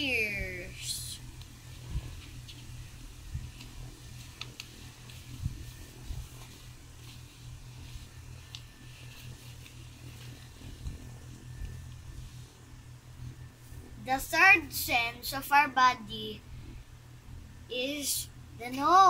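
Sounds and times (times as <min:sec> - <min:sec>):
low room hum: 0:00.0 - 0:19.0
paper rustling: 0:01.4 - 0:12.5.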